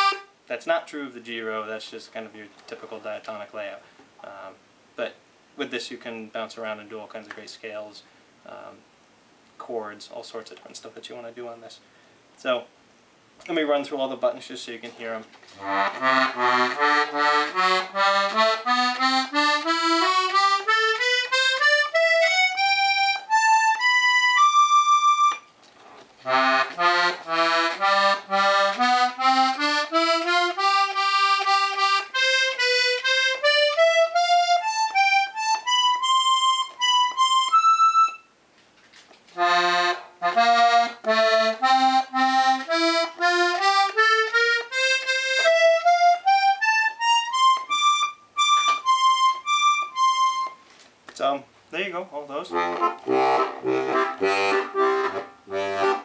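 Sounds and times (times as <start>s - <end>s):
button accordion single notes: 0.0s - 0.4s, 15.5s - 25.6s, 26.2s - 38.4s, 39.4s - 50.7s, 52.4s - 56.0s.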